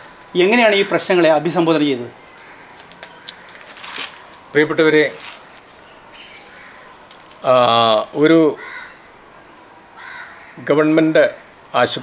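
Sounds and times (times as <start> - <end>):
low outdoor background: 0.0 - 12.0.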